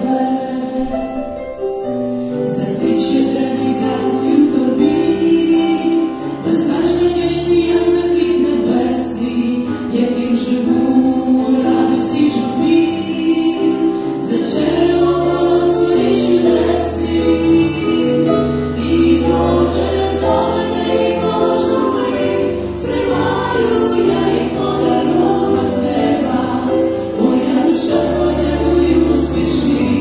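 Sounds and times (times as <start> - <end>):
women singing together: 0.0 - 1.4, 2.5 - 30.0
piano with sustained bass notes: 0.0 - 30.0.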